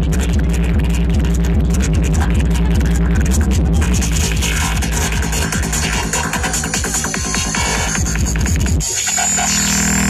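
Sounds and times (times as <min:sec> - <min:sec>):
kick-drum beat: 0:00.0 - 0:08.8
buzzing synthesizer drone: 0:00.0 - 0:10.0
loud electronic dance music: 0:00.0 - 0:10.0.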